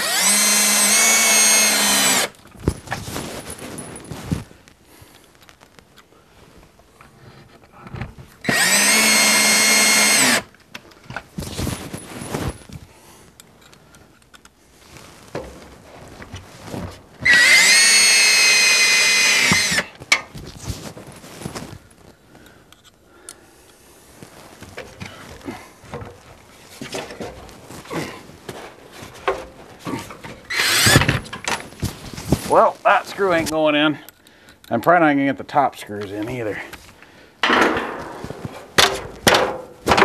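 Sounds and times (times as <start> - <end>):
cordless drill whining: 0.0 - 2.4, 8.4 - 10.5, 17.2 - 20.0, 30.4 - 31.2
handling knocks and clicks: 28.5 - 32.4, 36.1 - 40.0.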